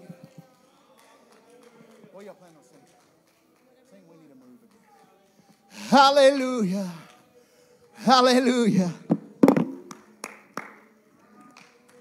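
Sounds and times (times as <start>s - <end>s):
sharp hand claps: 9.1s - 10.8s, 11.4s - 12.0s.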